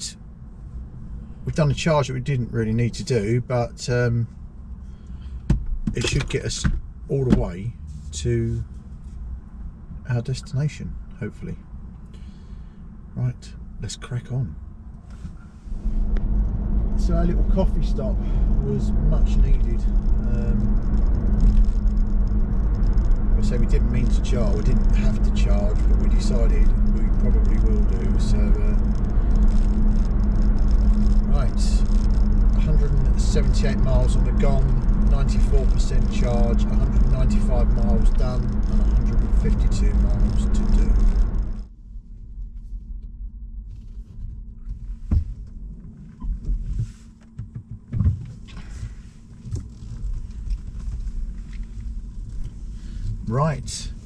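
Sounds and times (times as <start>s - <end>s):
road and tyre noise in car: 0.0s - 54.0s.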